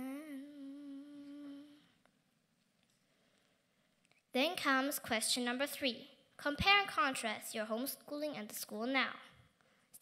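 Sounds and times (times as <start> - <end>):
girl singing long note: 0.0 - 1.9.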